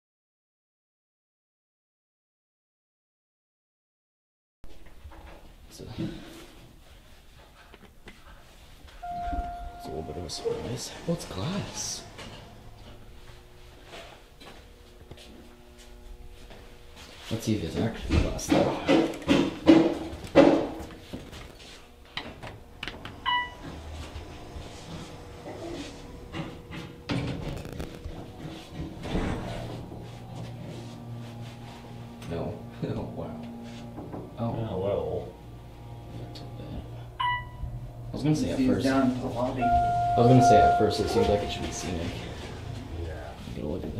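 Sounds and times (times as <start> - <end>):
low hum: 8.8 - 43.9
elevator arrival chime: 9.0 - 12.8, 23.2 - 23.6, 37.2 - 38.0, 38.9 - 42.8.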